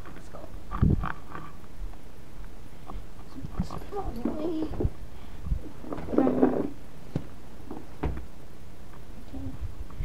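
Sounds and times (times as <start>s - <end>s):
camera handling rumble and rustling: 0.0s - 8.3s.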